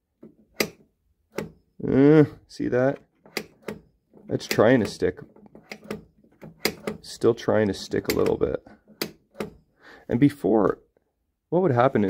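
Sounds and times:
pinball flipper clicks: 0.5 - 1.6, 3.2 - 7.0, 7.6 - 9.6.

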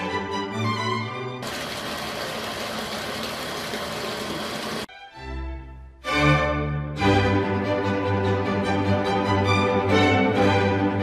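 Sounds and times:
water filling a plastic bucket: 1.4 - 4.9.

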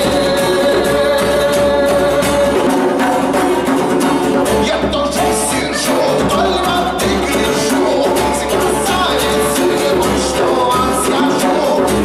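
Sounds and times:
man singing: 0.0 - 12.0
strummed acoustic guitar: 0.0 - 12.0.

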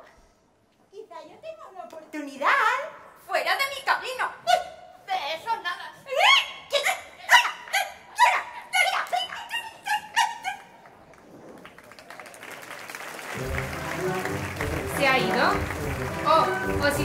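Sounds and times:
women squealing cries: 6.1 - 10.7
wind band low chords: 13.3 - 17.0.

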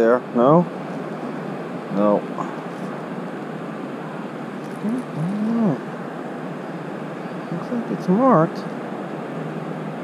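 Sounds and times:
wind: 0.0 - 10.0
man humming: 4.8 - 5.9.

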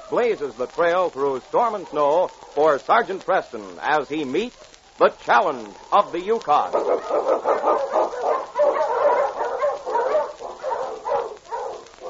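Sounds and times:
dogs barking: 0.0 - 0.6, 1.6 - 2.8, 4.5 - 4.8, 5.7 - 12.0.

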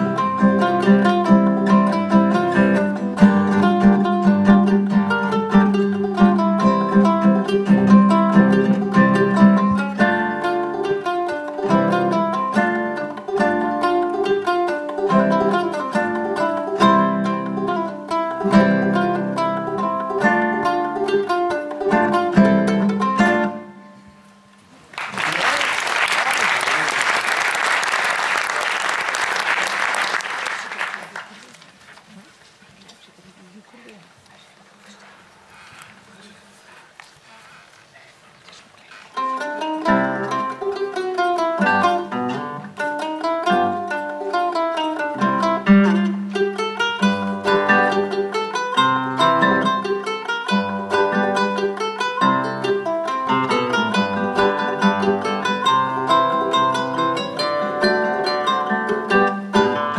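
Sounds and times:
ukulele and guitar plucked duet: 0.0 - 24.6, 39.2 - 59.9
audience applause: 24.9 - 31.9.

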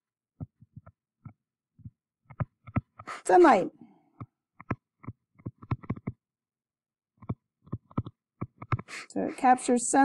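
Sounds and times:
stylus tapping on tablet screen: 0.4 - 3.2, 4.2 - 6.2, 7.2 - 9.0.

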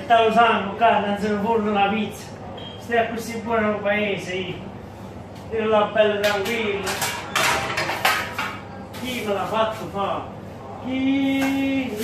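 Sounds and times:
metal scraping and knocking: 6.3 - 8.7.

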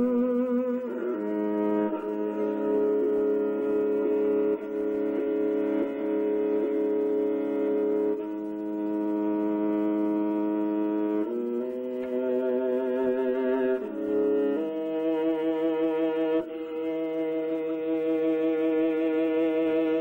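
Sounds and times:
bowed two-stringed fiddle: 0.0 - 20.0.

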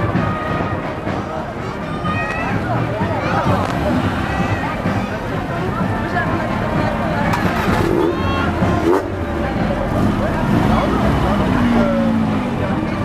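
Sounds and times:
car engines rumbling: 0.0 - 13.0
chatter of onlookers: 0.0 - 13.0.

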